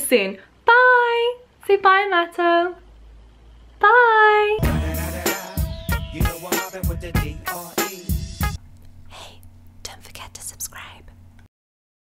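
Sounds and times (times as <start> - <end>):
steady low hum: 8.5 - 11.5
soft breathy whispering: 9.1 - 11.2.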